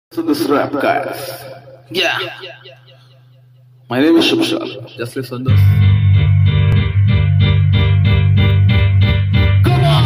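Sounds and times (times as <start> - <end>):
rap backing track with heavy bass: 4.2 - 10.0.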